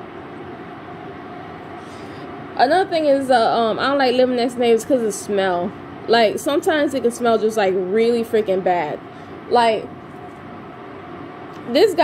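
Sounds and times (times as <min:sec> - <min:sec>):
faint mechanical hum: 0:00.0 - 0:12.0.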